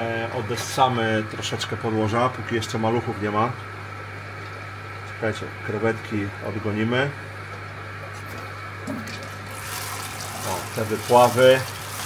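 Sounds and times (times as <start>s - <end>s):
steady low hum: 0.0s - 12.0s
water running through siphon hose: 8.3s - 12.0s.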